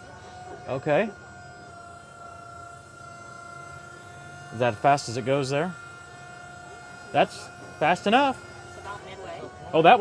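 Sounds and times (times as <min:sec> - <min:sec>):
electric motor and hydraulic whine: 0:00.0 - 0:10.0.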